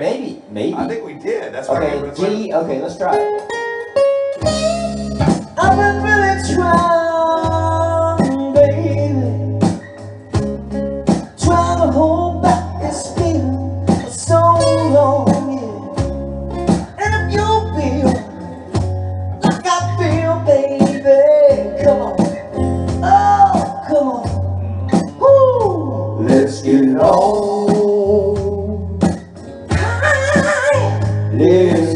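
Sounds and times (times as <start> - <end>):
guitar: 0.3 - 31.9
live band playing: 1.4 - 31.9
bass line: 1.6 - 2.3, 3.9 - 31.9
drum hits: 4.4 - 8.8, 9.6 - 11.8, 15.2 - 31.9.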